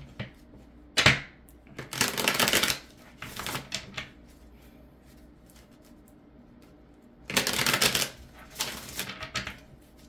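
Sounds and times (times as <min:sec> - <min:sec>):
cards shuffling: 0:01.8 - 0:04.4, 0:07.3 - 0:10.0.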